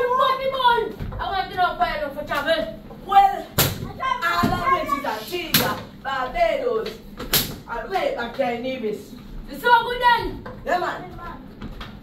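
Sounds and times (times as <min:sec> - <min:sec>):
children calling out: 0:03.4 - 0:05.2.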